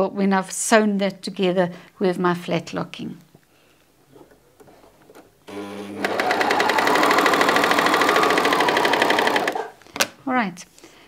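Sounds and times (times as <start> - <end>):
overlocker sewing machine stitching: 5.4 - 9.7.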